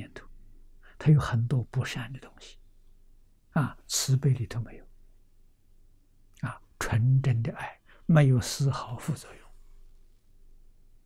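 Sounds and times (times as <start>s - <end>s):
man speaking: 0.0s - 0.3s, 0.9s - 2.6s, 3.5s - 4.9s, 6.4s - 9.5s.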